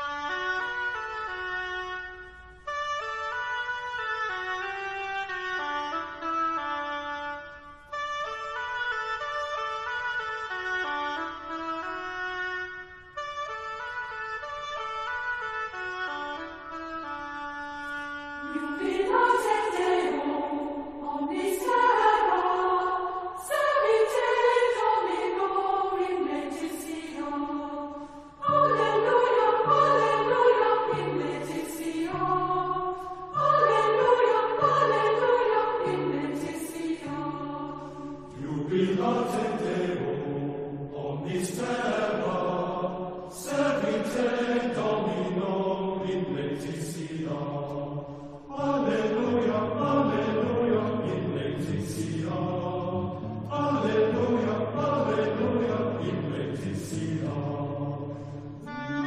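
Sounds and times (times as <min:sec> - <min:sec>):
choir singing a chant: 0:18.4 - 0:59.0.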